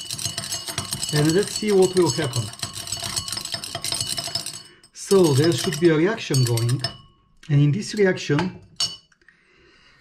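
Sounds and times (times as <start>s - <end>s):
glass rod clinking in beaker: 0.0s - 7.2s, 7.8s - 9.2s.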